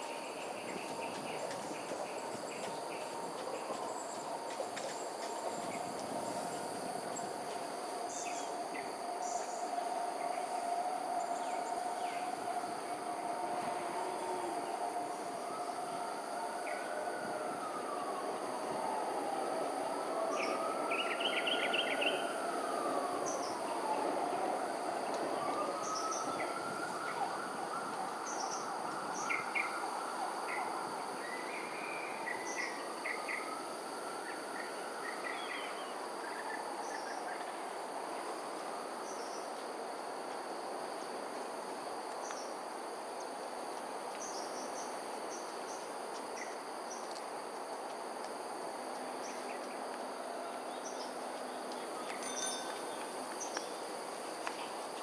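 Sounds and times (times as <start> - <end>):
distant siren-like wail: 0.0 - 41.5.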